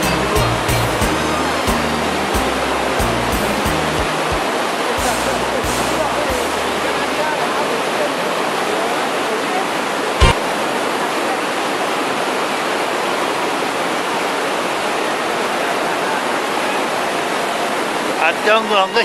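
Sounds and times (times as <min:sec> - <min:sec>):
rushing white-water torrent: 0:00.0 - 0:19.0.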